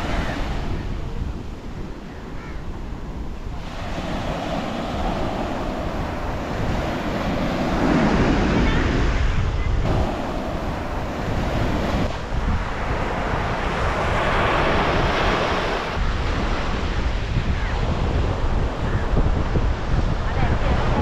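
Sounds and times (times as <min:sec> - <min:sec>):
surf breaking on a beach: 0:00.0 - 0:21.0
wind buffeting microphone: 0:00.0 - 0:21.0.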